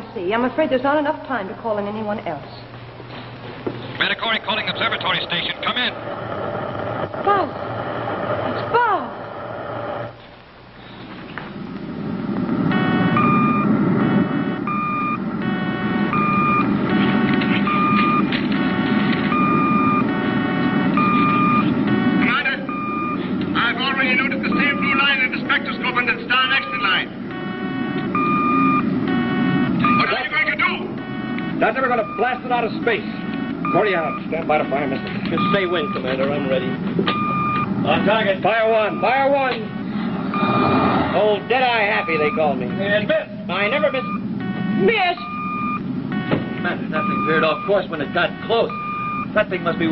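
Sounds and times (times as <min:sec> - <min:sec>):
low rocket engine rumble: 0:00.0 - 0:49.9
electronic beeping: 0:12.7 - 0:49.9
fast warbling chirps: 0:23.8 - 0:49.9.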